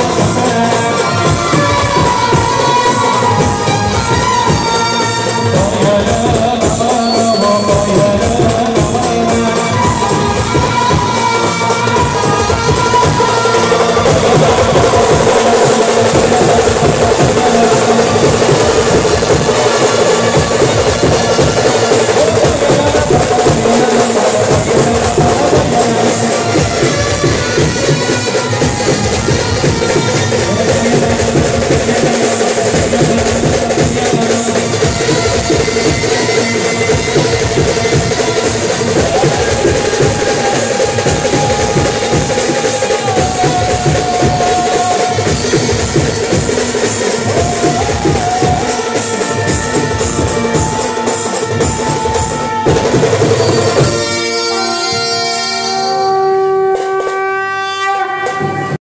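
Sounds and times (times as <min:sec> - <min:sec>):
fast hand drum drumming: 0:00.0 - 0:54.3
procession band over loudspeakers: 0:00.0 - 0:58.8.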